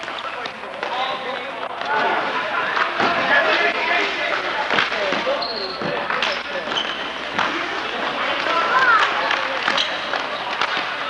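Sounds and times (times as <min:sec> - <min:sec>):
hockey sticks and ball clacking: 0:00.0 - 0:11.0.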